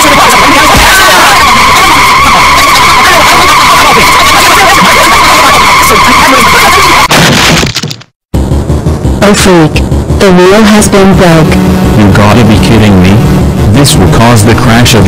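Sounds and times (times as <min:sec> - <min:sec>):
car tyres screeching: 0:00.0 - 0:07.5, 0:08.4 - 0:15.0.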